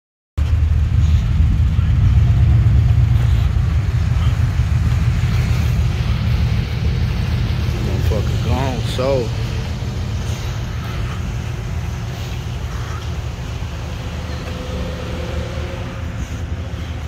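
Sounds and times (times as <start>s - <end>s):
car engine rumbling: 0.4s - 17.0s
person speaking: 7.7s - 9.5s.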